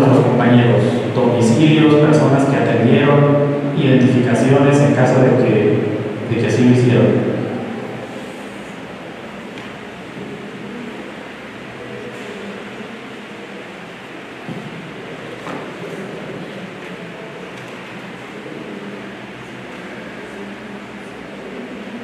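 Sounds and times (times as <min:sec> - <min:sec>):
steady room hum: 0:00.0 - 0:22.0.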